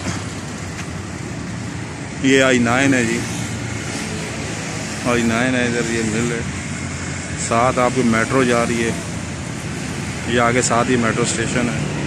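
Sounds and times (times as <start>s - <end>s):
road traffic rush: 0.0s - 12.0s.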